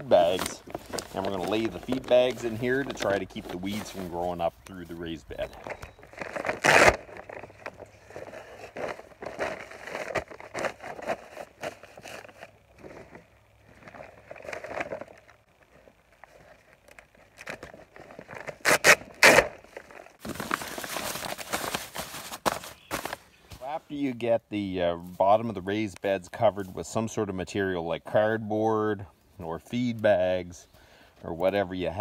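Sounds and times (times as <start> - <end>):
loud sharp paper crackles: 0.0 - 4.4, 5.6 - 23.6
paper bags crinkling and rustling: 0.0 - 23.7.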